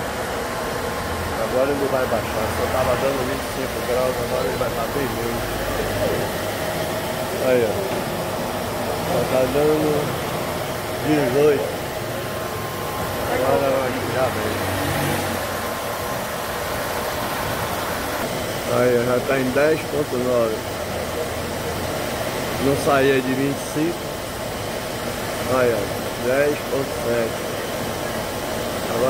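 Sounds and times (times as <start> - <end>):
air conditioning blowing through vent: 0.0 - 29.0
car engine idling: 0.0 - 29.0
man talking: 1.3 - 6.4, 7.3 - 8.0, 9.0 - 10.2, 10.9 - 11.8, 13.2 - 14.7, 18.6 - 20.7, 22.6 - 24.0, 25.4 - 27.4.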